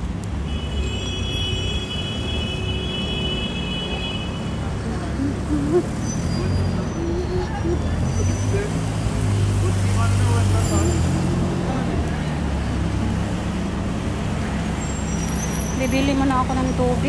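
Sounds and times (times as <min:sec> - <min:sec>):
road traffic driving past: 0:00.0 - 0:17.0.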